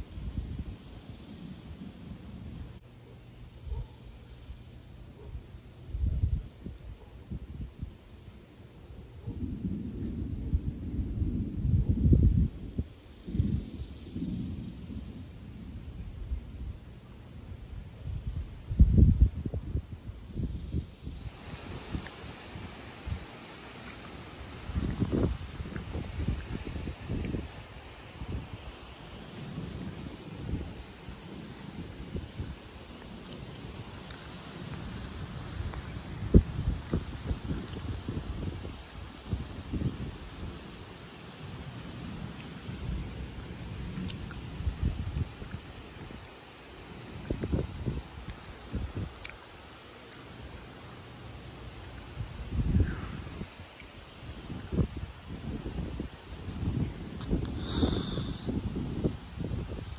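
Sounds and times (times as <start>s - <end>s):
gusty wind buffeting microphone: 0.0s - 2.8s, 5.2s - 8.0s, 8.9s - 59.9s.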